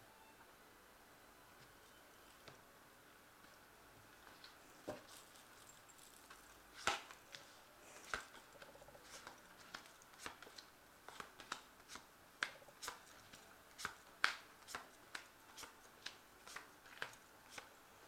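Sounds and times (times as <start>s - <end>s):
cards snapping and flicking: 6.8s - 7.2s, 13.8s - 17.7s.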